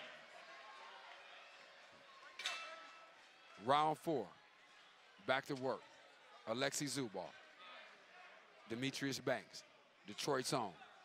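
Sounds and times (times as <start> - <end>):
quiet arena ambience: 0.0 - 11.0.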